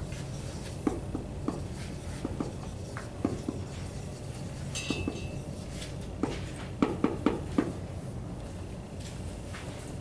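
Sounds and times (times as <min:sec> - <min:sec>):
marker writing on a whiteboard: 0:00.0 - 0:07.8.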